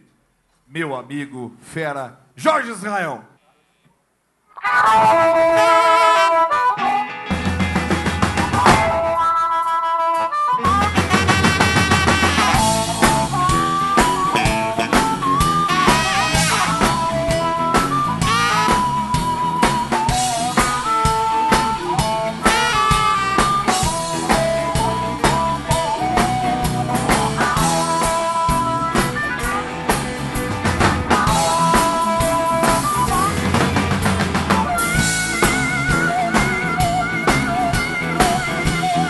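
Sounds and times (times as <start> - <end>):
saxophone: 4.6 - 7.3, 8.6 - 30.2
harmonica: 4.6 - 7.5, 8.4 - 33.7, 34.4 - 39.0
live blues band playing: 4.6 - 39.0.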